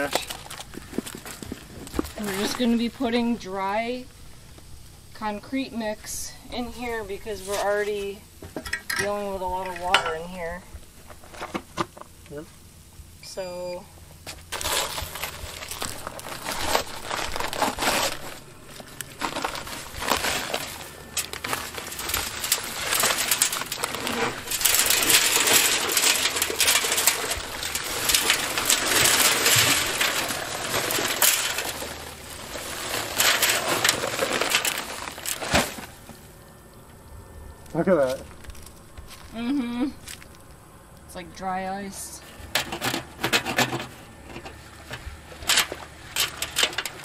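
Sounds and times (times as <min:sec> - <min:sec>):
sand and gravel pouring: 0:00.0 - 0:04.0, 0:14.4 - 0:36.4, 0:42.8 - 0:47.0
paper sack rustling: 0:00.0 - 0:05.0, 0:05.8 - 0:08.2, 0:14.2 - 0:36.7, 0:42.2 - 0:47.0.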